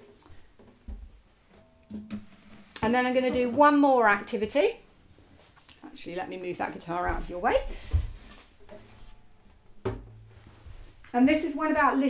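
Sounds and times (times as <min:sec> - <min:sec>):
guitar knock: 0:09.8 - 0:10.2
guitar thumping on floor: 0:09.8 - 0:10.3.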